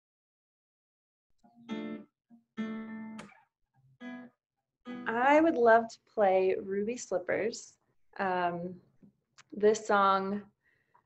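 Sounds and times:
acoustic guitar chord strummed: 1.5 - 3.4, 4.0 - 4.3, 4.9 - 5.2.

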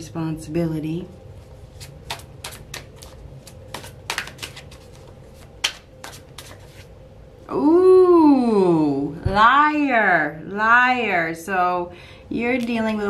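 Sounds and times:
cards being shuffled: 1.6 - 6.9.

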